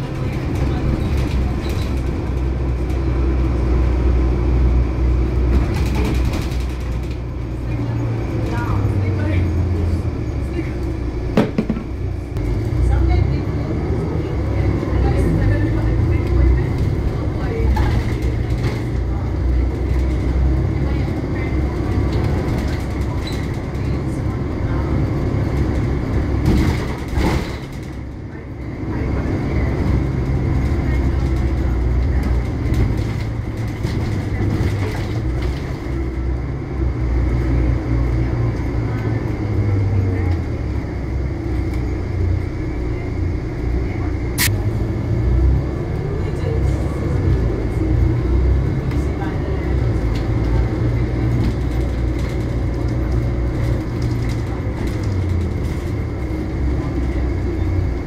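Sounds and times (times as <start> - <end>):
bus engine and road rumble: 0.0 - 58.0.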